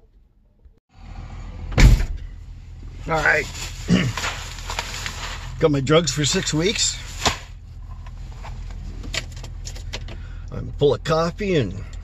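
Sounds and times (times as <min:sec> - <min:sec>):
van engine idling: 0:00.9 - 0:12.0
small items handled in cab: 0:01.7 - 0:12.0.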